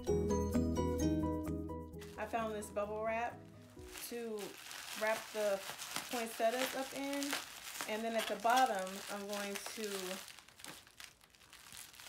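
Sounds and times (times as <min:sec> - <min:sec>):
bubble wrap crinkling: 0:02.0 - 0:12.0.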